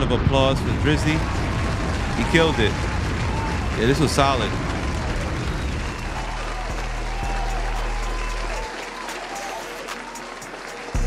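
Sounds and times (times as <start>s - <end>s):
crowd applause and cheering: 0.0s - 11.0s.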